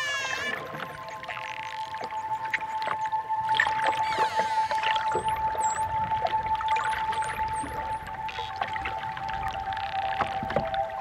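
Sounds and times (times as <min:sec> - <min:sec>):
dolphin whistles: 0:00.0 - 0:06.0
calm ambient music: 0:00.0 - 0:11.0.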